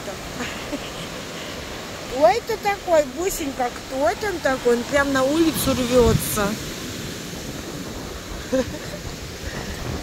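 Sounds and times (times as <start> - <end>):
ocean surf washing: 0.0 - 10.0
wind buffeting microphone: 1.1 - 10.0.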